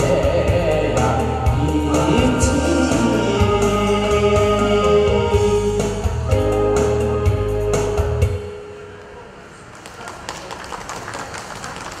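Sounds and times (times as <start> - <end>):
held music chord: 0.0 - 9.0
audience hand claps: 9.7 - 12.0.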